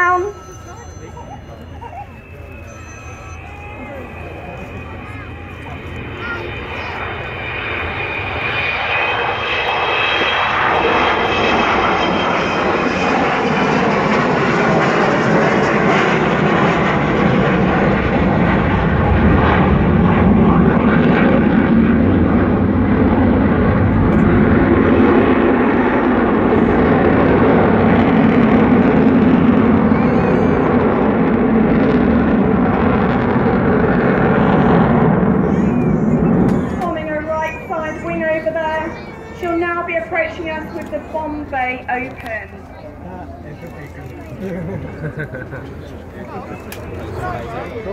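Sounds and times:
jet aircraft roar: 0:00.0 - 0:47.9.

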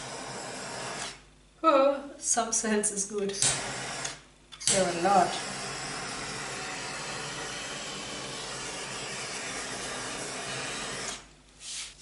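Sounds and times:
butane torch flame hissing: 0:00.0 - 0:01.2, 0:03.4 - 0:12.0.

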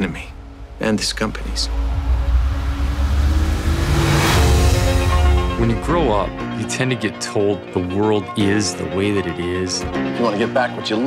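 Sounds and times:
car engine running hard: 0:01.6 - 0:05.6.

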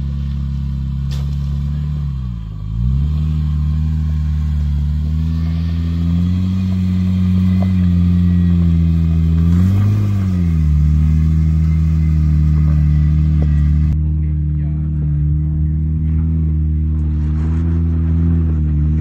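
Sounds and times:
car engine pulling under load: 0:00.0 - 0:19.0.

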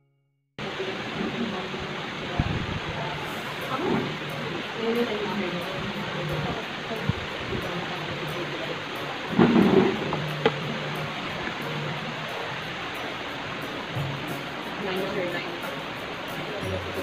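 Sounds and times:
background voices: 0:00.6 - 0:17.0
faint background music: 0:00.6 - 0:17.0.

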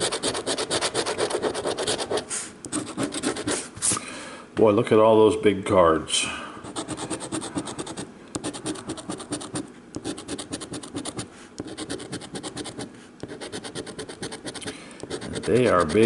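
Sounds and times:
coin scratching lottery ticket: 0:00.0 - 0:03.6, 0:06.7 - 0:16.0.

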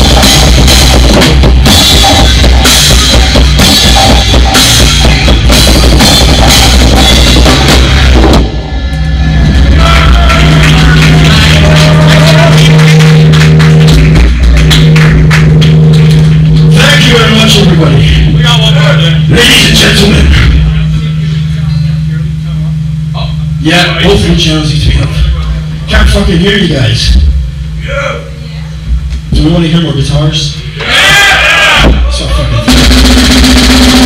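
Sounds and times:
drum kit with cymbals: 0:00.0 - 0:08.6, 0:32.6 - 0:34.0
live metal band playing: 0:00.0 - 0:28.5, 0:31.8 - 0:34.0.

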